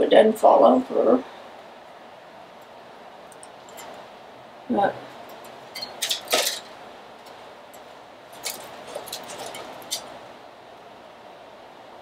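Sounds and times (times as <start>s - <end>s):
leaves and twig rustling: 5.0s - 10.4s.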